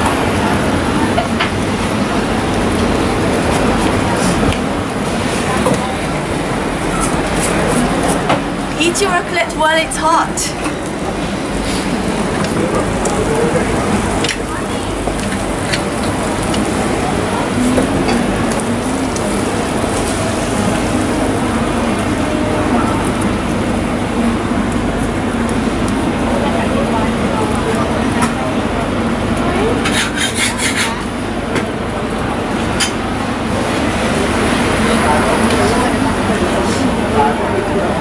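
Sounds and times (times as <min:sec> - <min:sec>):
indistinct crowd chatter: 0:00.0 - 0:38.0.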